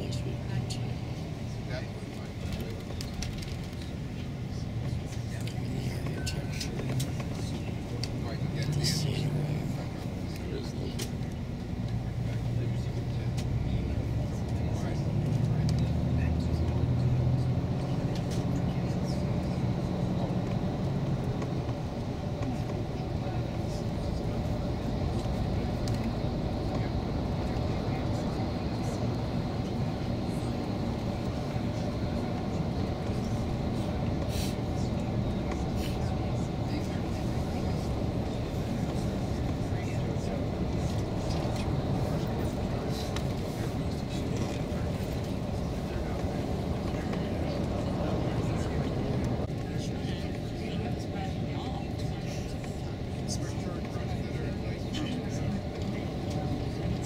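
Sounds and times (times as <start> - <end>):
bus engine drone: 0.0 - 57.0
road noise: 0.0 - 57.0.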